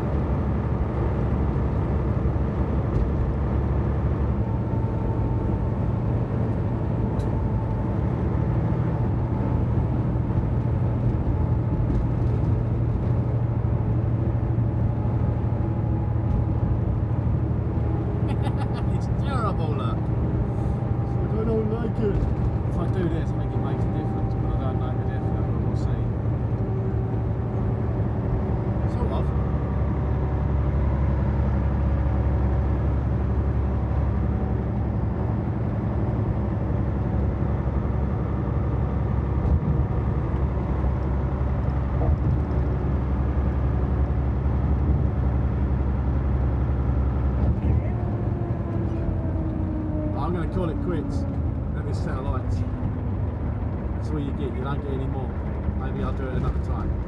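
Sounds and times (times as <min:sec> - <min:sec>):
road noise: 0:00.0 - 0:57.0
truck engine droning: 0:00.0 - 0:57.0.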